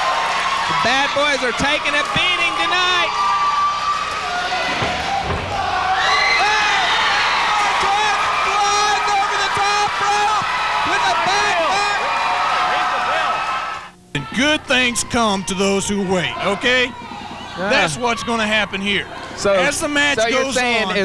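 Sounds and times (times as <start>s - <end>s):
crowd shouting and yelling: 0.0s - 21.0s.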